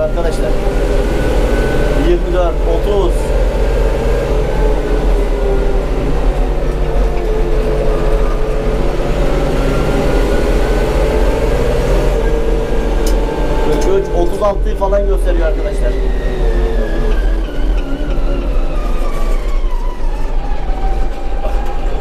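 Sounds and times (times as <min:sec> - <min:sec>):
tractor diesel engine running: 0:00.0 - 0:22.0.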